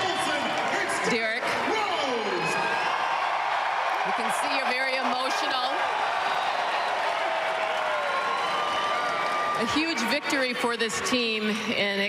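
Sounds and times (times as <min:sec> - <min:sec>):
crowd cheering and applauding: 0:00.0 - 0:11.8.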